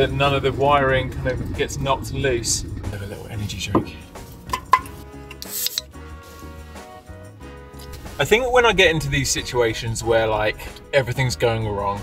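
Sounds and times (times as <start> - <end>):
background music: 0.0 - 12.0
can ring-pull hissing open: 4.3 - 6.0.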